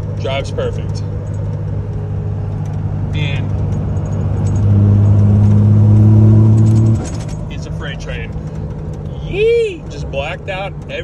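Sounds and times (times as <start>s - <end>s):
deep multi-tone hum: 0.0s - 11.0s
truck cab drone at speed: 0.0s - 11.0s.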